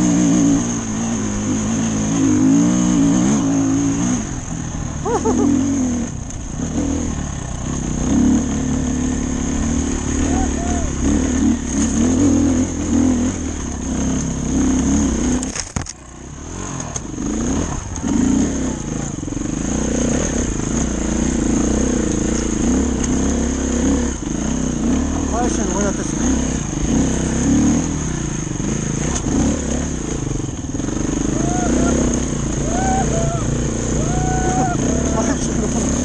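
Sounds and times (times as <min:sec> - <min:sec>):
dirt bike engine revving: 0:00.0 - 0:36.0.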